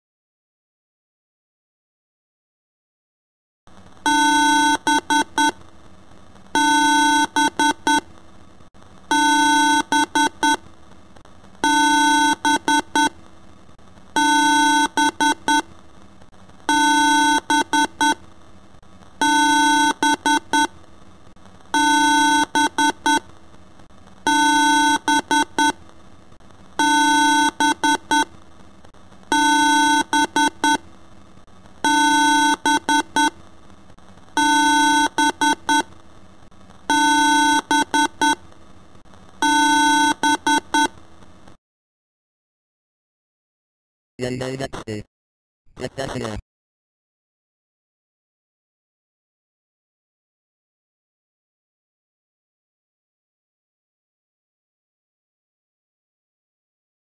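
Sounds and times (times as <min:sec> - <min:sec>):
looping stuttered electronic tone: 0:45.8 - 0:46.4.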